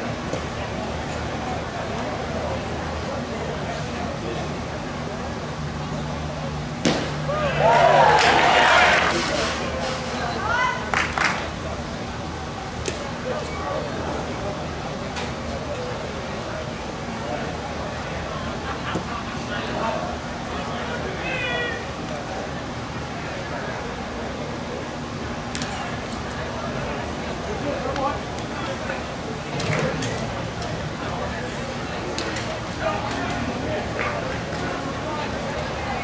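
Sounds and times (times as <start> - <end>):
crowd murmuring: 0.0 - 36.0.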